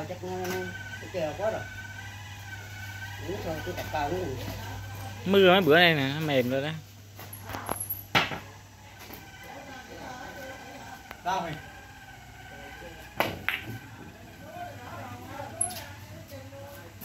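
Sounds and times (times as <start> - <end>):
billiard balls clicking: 13.2 - 13.8.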